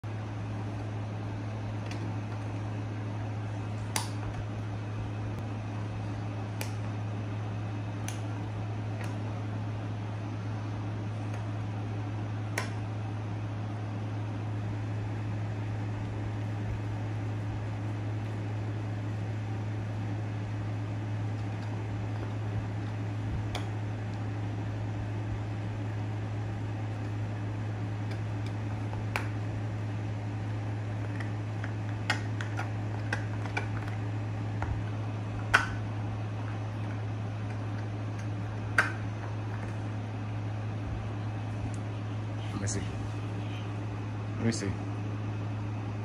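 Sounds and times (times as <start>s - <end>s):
steady low hum: 0.0s - 46.0s.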